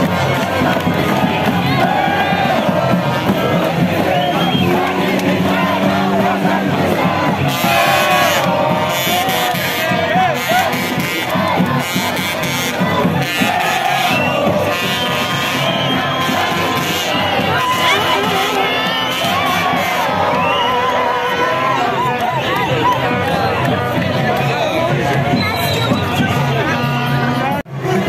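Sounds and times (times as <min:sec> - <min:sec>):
crowd cheering and chanting: 0:00.0 - 0:28.0.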